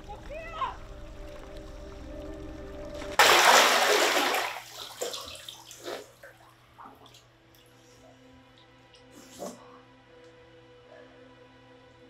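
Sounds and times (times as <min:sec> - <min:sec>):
water dripping: 0:00.0 - 0:07.8
bathwater splashing: 0:02.9 - 0:07.4.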